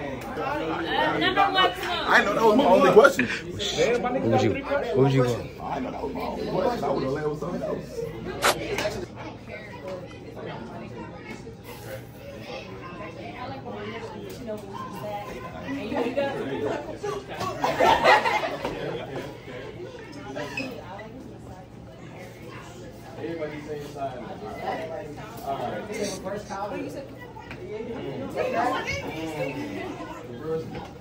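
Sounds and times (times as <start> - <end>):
indistinct chatter: 0.0 - 31.0.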